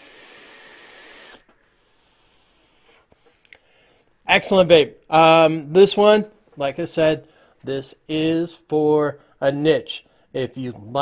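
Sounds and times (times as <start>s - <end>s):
airy hiss of vape draw: 0.0s - 3.4s.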